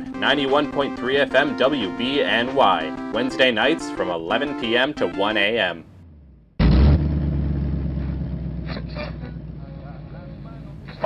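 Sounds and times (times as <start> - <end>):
car engine running: 5.8 - 11.0.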